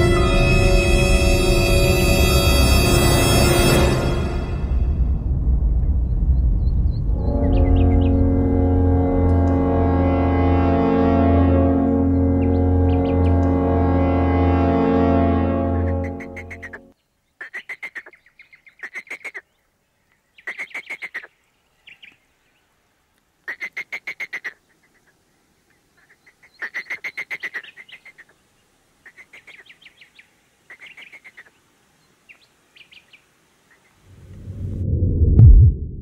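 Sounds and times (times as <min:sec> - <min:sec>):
low rumbling whoosh: 0:00.0 - 0:13.9, 0:34.1 - 0:36.0.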